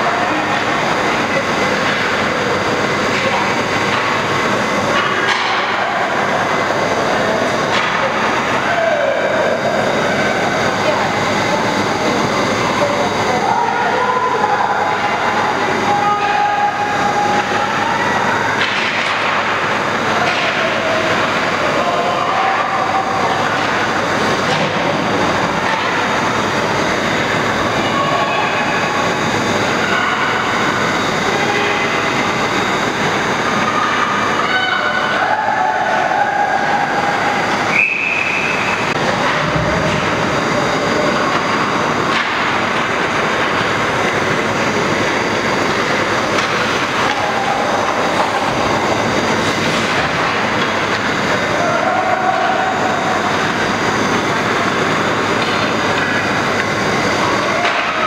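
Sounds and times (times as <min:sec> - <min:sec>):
arena crowd noise: 0:00.0 - 0:58.0.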